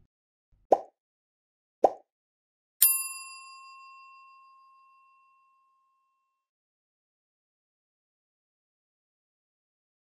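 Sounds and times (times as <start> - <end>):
bright bell ding: 2.8 - 6.2.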